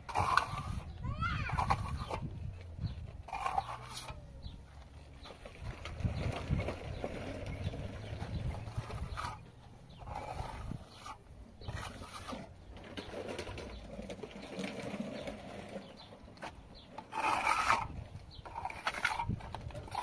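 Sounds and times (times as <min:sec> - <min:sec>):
trowel scraping plaster: 0:00.0 - 0:04.2, 0:05.2 - 0:20.0.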